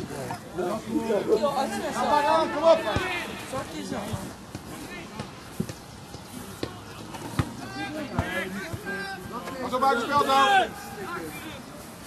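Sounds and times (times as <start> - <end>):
players and spectators shouting: 0.1 - 4.2, 6.4 - 12.0
football being kicked: 4.0 - 9.4.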